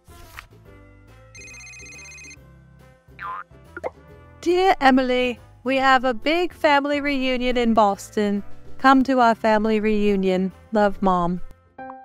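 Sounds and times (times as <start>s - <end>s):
soft background music: 0.0s - 12.0s
phone alert tone: 1.4s - 2.4s.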